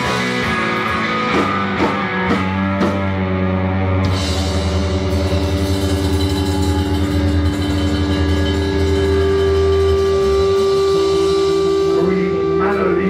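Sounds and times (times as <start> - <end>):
blues band held chord: 0.0 - 13.0
low bass tone: 0.0 - 13.0.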